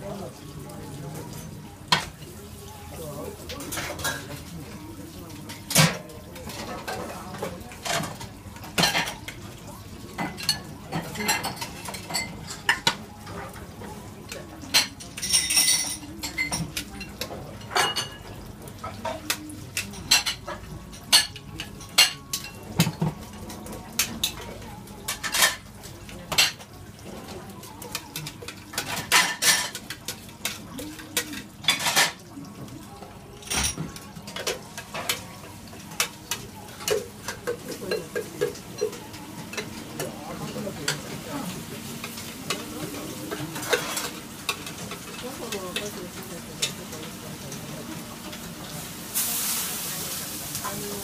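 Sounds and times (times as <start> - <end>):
stove and boiling pots hissing: 0.0 - 51.0
bowls and pots clinking: 10.1 - 13.6, 14.3 - 25.7, 27.7 - 32.3, 42.0 - 46.0.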